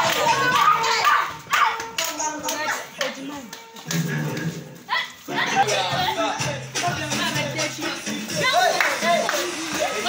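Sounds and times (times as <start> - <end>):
children shouting: 0.0 - 2.0
hand claps: 0.0 - 4.5, 8.8 - 9.8.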